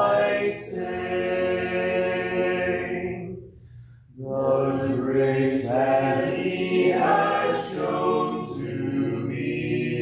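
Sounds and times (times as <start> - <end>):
congregation singing a hymn: 0.0 - 3.4, 4.2 - 10.0.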